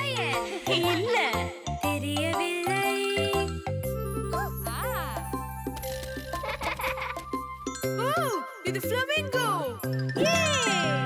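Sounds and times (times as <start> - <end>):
children's cartoon song: 0.0 - 5.4, 8.0 - 11.0
tinkling chimes: 7.3 - 11.0.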